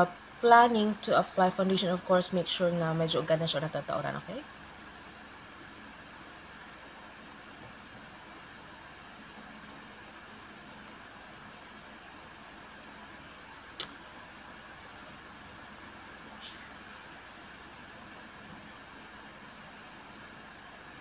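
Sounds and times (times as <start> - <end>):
faint low hum: 0.0 - 21.0
room noise hiss: 0.0 - 21.0
sharp click: 13.8 - 14.0.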